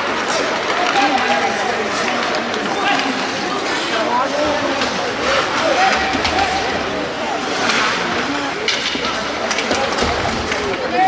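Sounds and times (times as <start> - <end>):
skate blades scraping ice: 0.0 - 10.0
voices of players and spectators: 0.0 - 11.0.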